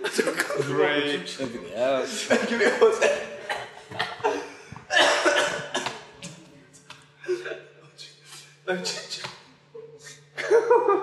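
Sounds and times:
men laughing: 0.0s - 0.8s, 2.0s - 5.5s, 10.3s - 11.0s.

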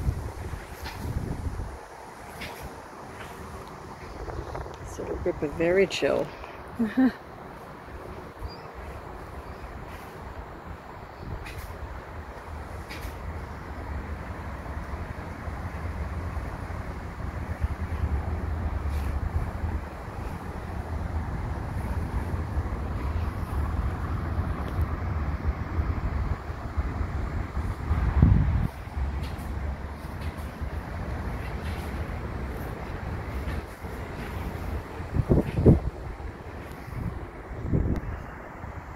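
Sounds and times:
wind buffeting microphone: 0.0s - 6.8s, 7.4s - 38.9s.

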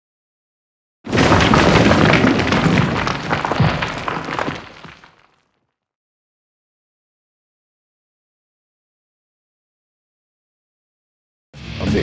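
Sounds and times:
shattering crash: 1.1s - 5.4s.

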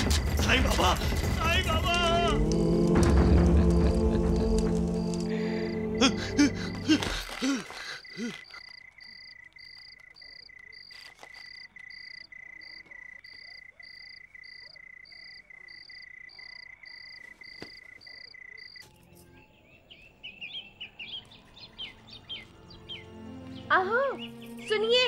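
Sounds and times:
crickets trilling: 2.4s - 19.4s
birds chirping: 3.1s - 25.0s.

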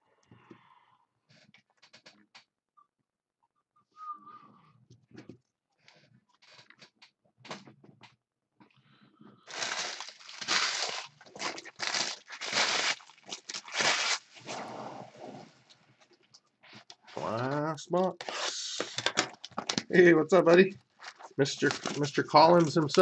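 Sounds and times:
plastic packaging crinkling and tearing: 9.5s - 14.4s, 17.1s - 23.0s.

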